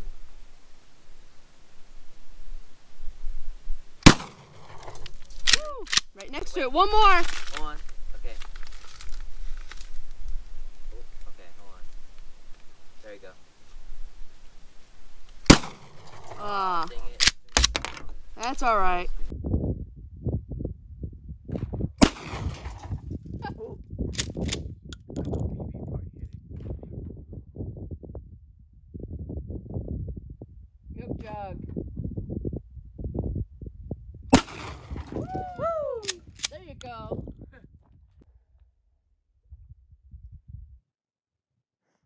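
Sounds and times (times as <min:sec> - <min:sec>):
shotgun blasts: 0:04.0 - 0:05.6, 0:15.4 - 0:18.0, 0:22.0 - 0:22.9, 0:34.3 - 0:35.2.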